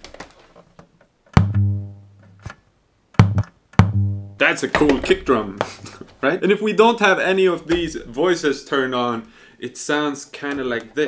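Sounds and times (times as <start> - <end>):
toy synthesizer low notes: 3.3 - 4.4.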